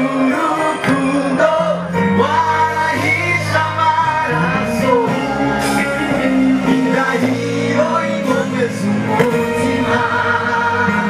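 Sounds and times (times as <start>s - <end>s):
gospel singing with band: 0.0s - 11.0s.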